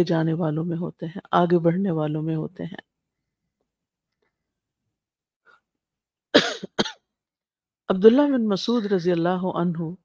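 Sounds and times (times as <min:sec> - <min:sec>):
person coughing: 0:06.4 - 0:07.0.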